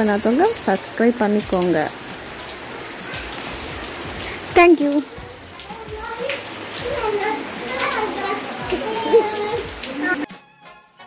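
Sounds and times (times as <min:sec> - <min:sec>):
steady hiss with crackling: 0:00.0 - 0:10.3.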